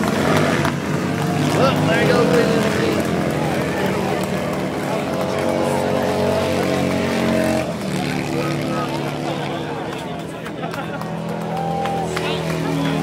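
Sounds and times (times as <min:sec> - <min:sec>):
motorcycle engines at high revs: 0:00.0 - 0:13.0.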